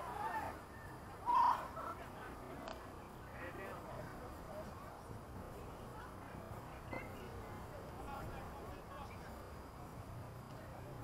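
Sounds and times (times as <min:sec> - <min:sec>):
people shouting and calling: 0:00.0 - 0:00.6, 0:01.2 - 0:02.2.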